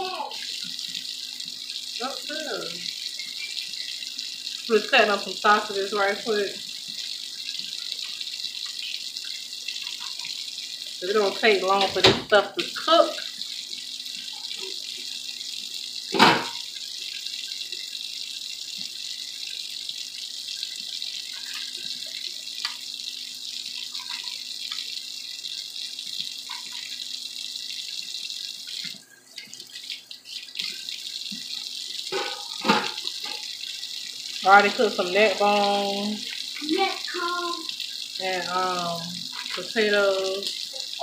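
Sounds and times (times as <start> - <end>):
range hood fan running: 0.0 - 23.9.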